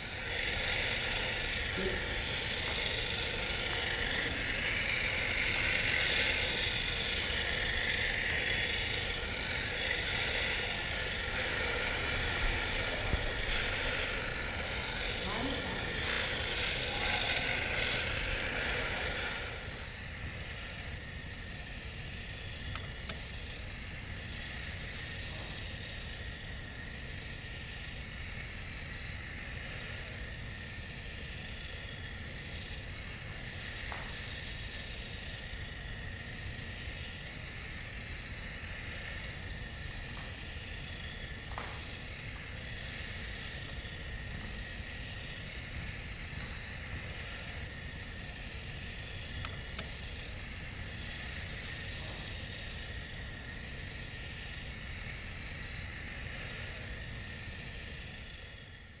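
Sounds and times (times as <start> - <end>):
robot motor whirring: 0.0 - 59.0.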